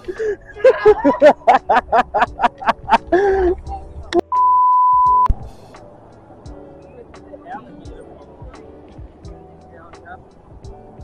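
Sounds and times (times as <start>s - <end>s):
electronic beep: 4.2s - 5.3s.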